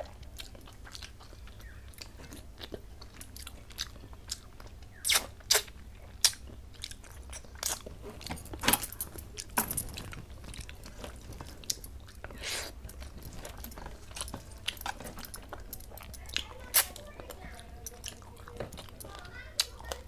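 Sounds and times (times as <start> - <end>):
smeary sounds: 0.0 - 20.0
wet chewing and mouth clicks: 0.0 - 20.0.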